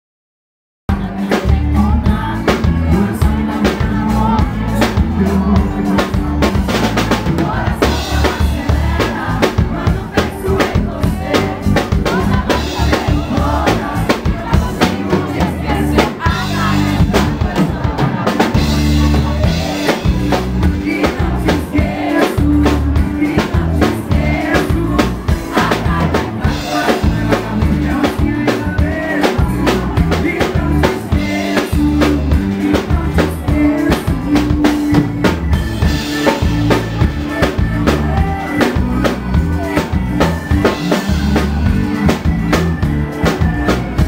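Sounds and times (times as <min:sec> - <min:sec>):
man singing into microphone: 0:00.9 - 0:42.2
drum kit steady beat: 0:00.9 - 0:44.0
heavy bass line: 0:00.9 - 0:44.0.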